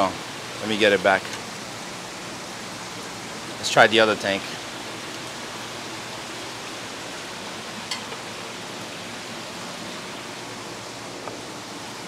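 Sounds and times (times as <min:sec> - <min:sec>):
water running: 0:00.0 - 0:12.0.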